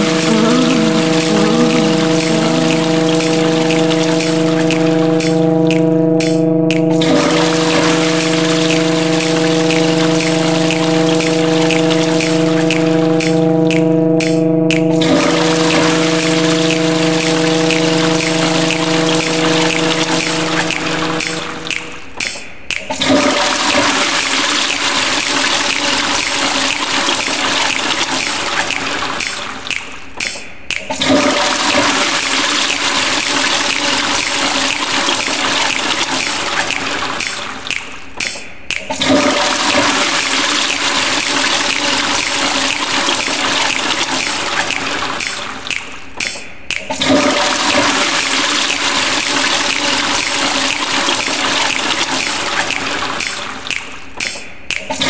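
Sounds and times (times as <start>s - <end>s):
held chord of pitched tones: 0.0s - 22.1s
looped toilet flush: 0.0s - 22.1s, 22.8s - 29.8s, 30.8s - 37.8s, 38.7s - 45.8s, 46.7s - 53.9s.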